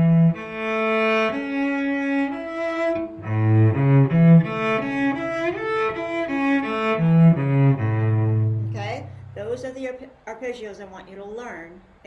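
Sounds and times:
cello playing arpeggio: 0:00.0 - 0:09.8
woman's voice: 0:08.7 - 0:11.9.

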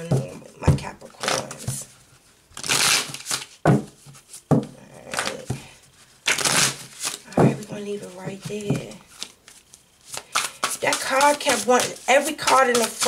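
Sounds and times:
cards riffling: 0:02.6 - 0:03.6, 0:06.3 - 0:07.3, 0:09.0 - 0:13.0
cards snapping: 0:06.3 - 0:07.2, 0:09.2 - 0:13.0.

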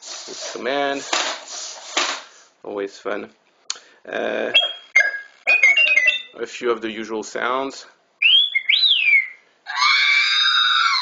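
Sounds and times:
whistled beep gliding down: 0:04.6 - 0:06.3
shrill electronic cry: 0:08.3 - 0:11.0.

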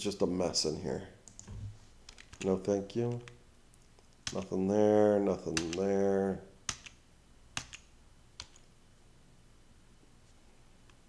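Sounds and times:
computer keys clicking: 0:02.1 - 0:03.4, 0:04.2 - 0:04.5, 0:05.5 - 0:05.9, 0:06.7 - 0:07.0, 0:07.6 - 0:08.7.

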